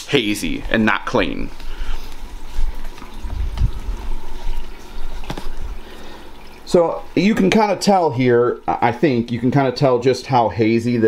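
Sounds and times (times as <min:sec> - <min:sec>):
water trickling and splashing: 0:00.0 - 0:09.8.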